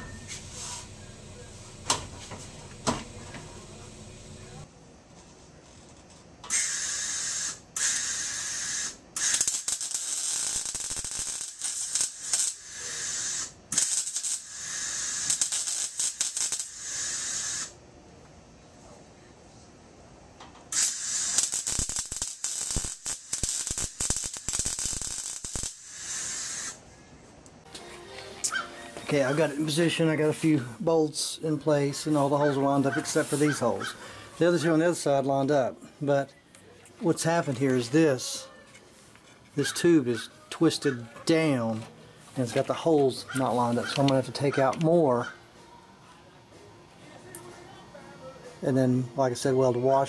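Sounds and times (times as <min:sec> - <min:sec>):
wire brush scrubbing steel: 0:32.1 - 0:33.8.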